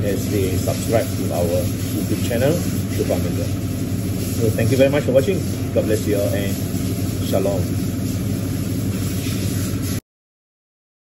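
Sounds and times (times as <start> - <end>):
low machine hum: 0.0 - 10.0.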